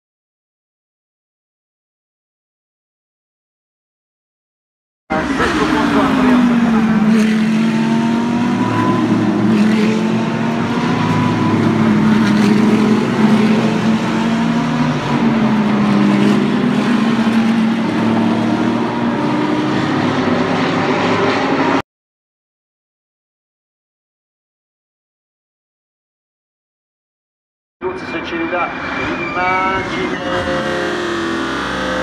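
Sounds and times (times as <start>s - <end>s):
race cars passing at speed: 5.1s - 21.8s, 27.8s - 32.0s.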